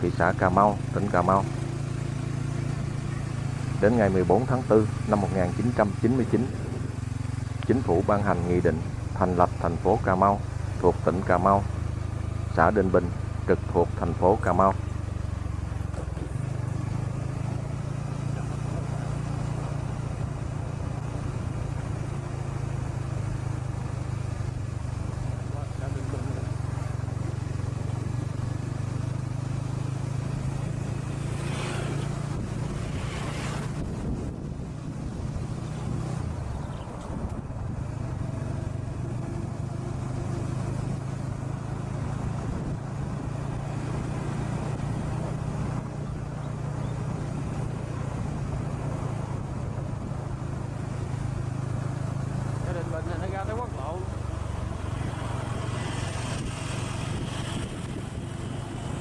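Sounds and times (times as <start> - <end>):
vehicle engine running: 0.0 - 59.0
wind noise on microphone: 32.2 - 37.9, 56.1 - 58.8.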